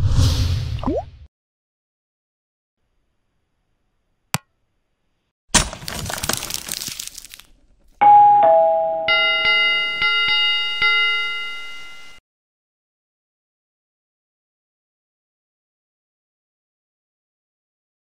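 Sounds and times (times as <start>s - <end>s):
whooshing noise: 0.0s - 0.8s
bell-like notification ring: 8.0s - 12.2s
falling ding-dong chime: 8.0s - 12.2s.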